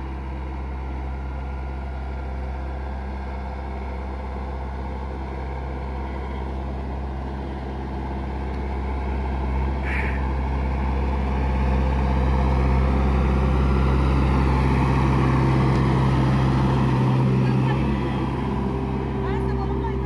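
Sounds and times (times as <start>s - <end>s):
diesel engine running: 0.0s - 20.0s.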